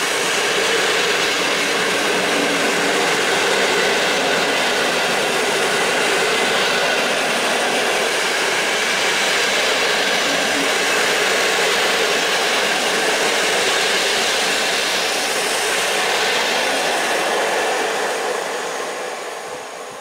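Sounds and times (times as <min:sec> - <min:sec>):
train passing at speed: 0:00.0 - 0:20.0.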